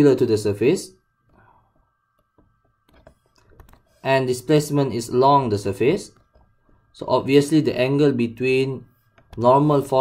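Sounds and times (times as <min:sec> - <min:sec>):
stylus tapping on tablet screen: 0:02.1 - 0:03.9.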